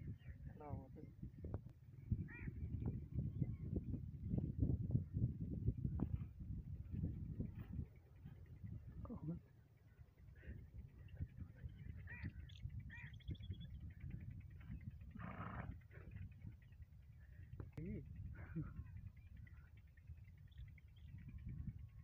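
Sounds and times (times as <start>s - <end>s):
wind rumble on microphone: 0.0s - 22.0s
faint voice-like sounds: 7.6s - 12.4s.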